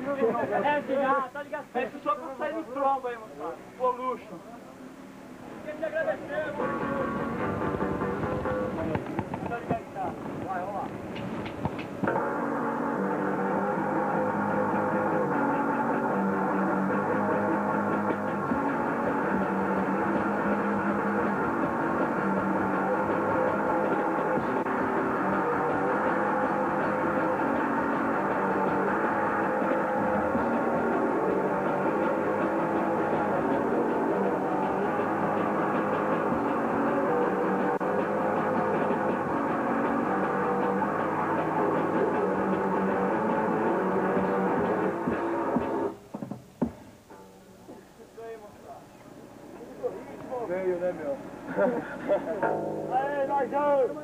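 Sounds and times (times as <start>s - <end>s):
distorted electric guitars: 6.5s - 10.4s, 11.2s - 46.0s, 52.4s - 54.0s
drums: 6.5s - 48.0s.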